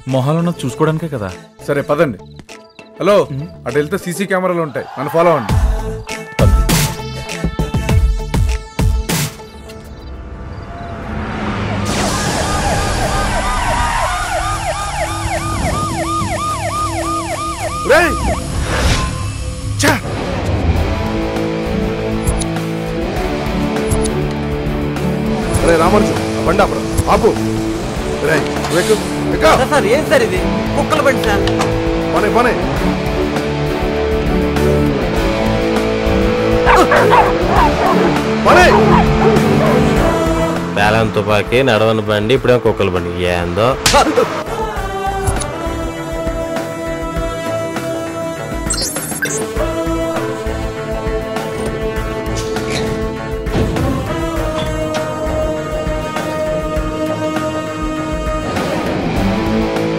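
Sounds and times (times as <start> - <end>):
film background score: 0.0 - 59.9
police siren yelping: 11.9 - 18.7, 36.6 - 39.9.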